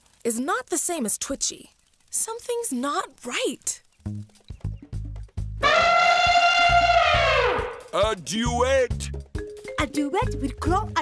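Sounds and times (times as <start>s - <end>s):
background music with plucked bass: 4.1s - 5.6s, 6.8s - 11.0s
cartoon elephant trumpeting: 5.6s - 8.0s.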